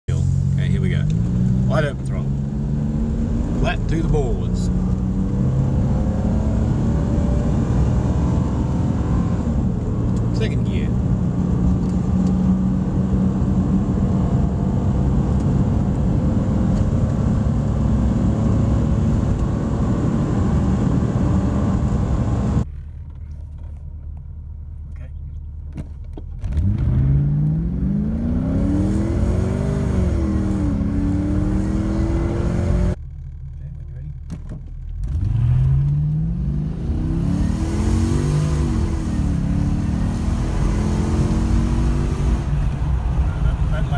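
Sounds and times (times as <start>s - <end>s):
car engine accelerating: 0.1s - 22.7s, 26.2s - 43.9s
car engine idling: 32.8s - 35.1s.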